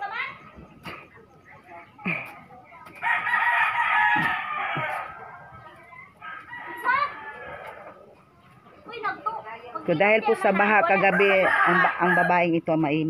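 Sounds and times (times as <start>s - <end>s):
rooster crowing: 3.0s - 5.3s, 11.1s - 12.4s.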